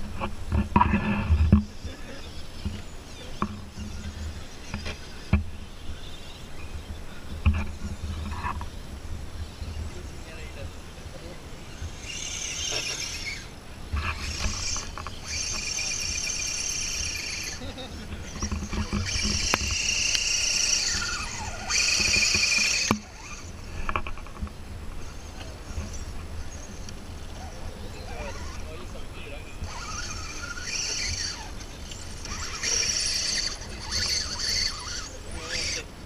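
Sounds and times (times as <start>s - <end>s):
rc rock crawler rumble: 0.0s - 36.0s
electric motor whine: 11.2s - 36.0s
tyres scrabbling on dirt and stone: 12.1s - 29.0s, 29.6s - 35.8s.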